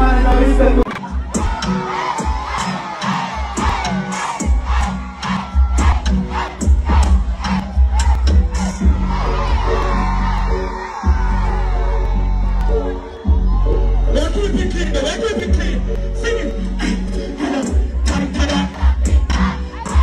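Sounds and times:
crowd cheering and shouting: 0.0s - 20.0s
dancehall beat with deep bass: 0.0s - 20.0s.

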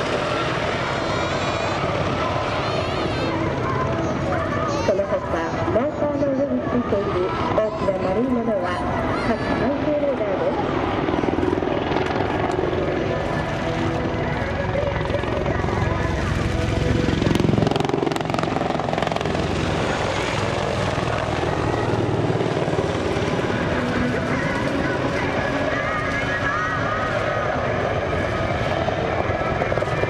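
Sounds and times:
helicopter flying overhead: 0.0s - 30.0s.

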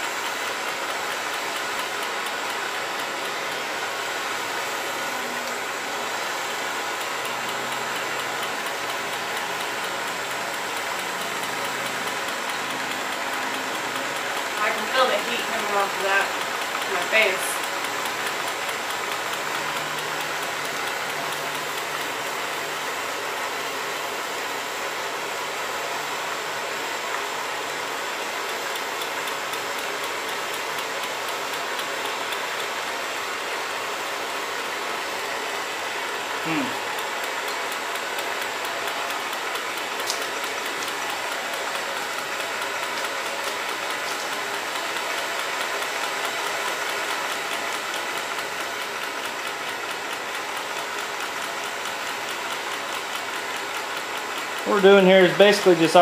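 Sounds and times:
blowtorch flame hissing: 0.0s - 56.0s.

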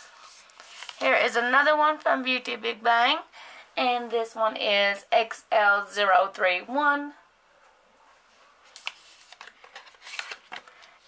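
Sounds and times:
cardboard rustling: 8.7s - 10.9s.

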